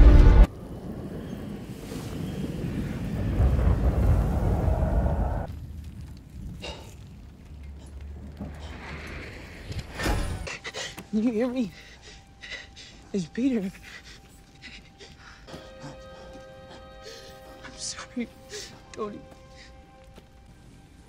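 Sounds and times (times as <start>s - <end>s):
loud film music: 0.0s - 0.5s, 10.4s - 21.0s.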